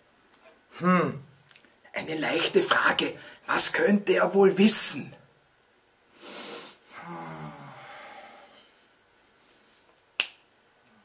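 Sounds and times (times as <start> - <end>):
man humming: 0.7 - 1.2, 6.9 - 8.4
finger snap: 10.2 - 10.5.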